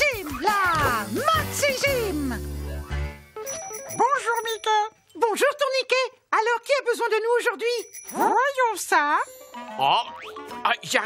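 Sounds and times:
high ringing jingle: 3.4s - 5.2s, 7.6s - 9.7s.

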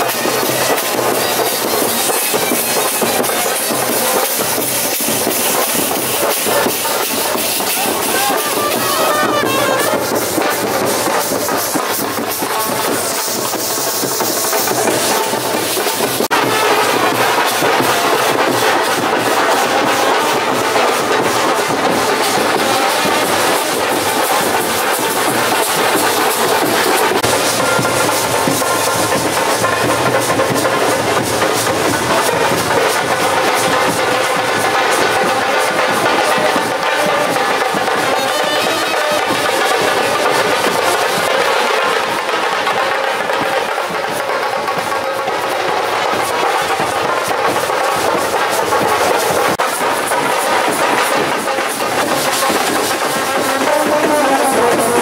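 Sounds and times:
fast dense drumming: 0.0s - 55.0s
brass horns playing: 53.3s - 55.0s.

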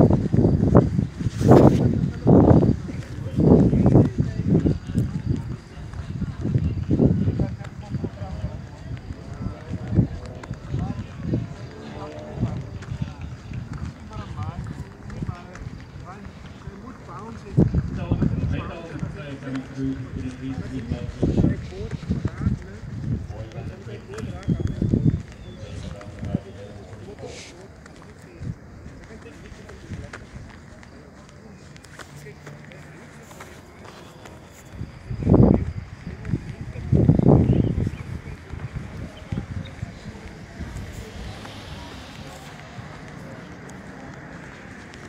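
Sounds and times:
faint voices talking: 0.0s - 45.0s.

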